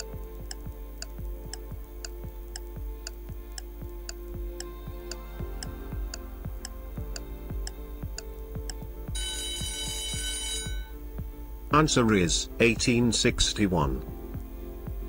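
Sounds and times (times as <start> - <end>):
clock ticking: 0.0 - 12.0
background music with steady beat: 0.0 - 15.0
alarm ringing: 9.2 - 11.0.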